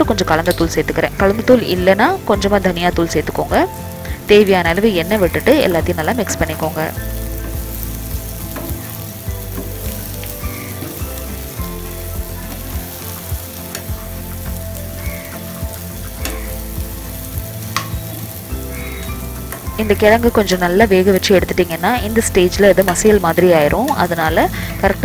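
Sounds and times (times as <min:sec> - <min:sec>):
food sizzling in oil: 0:00.0 - 0:25.0.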